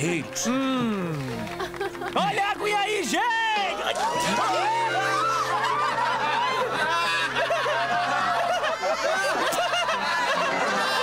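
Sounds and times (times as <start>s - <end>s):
crowd laughing: 1.1s - 2.7s, 3.7s - 11.0s.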